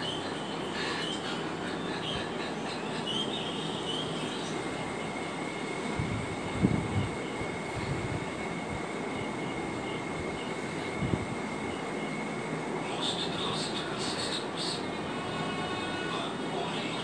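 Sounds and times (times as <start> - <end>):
low rumbling background noise: 0.0 - 17.0.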